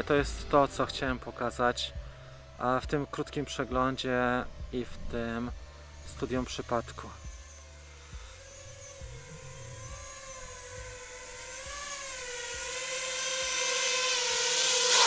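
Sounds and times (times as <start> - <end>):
drone motors whining: 0.0 - 15.0.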